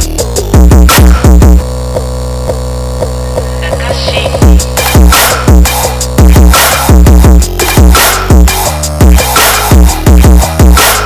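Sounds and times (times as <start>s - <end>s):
trap instrumental: 0.0s - 11.0s.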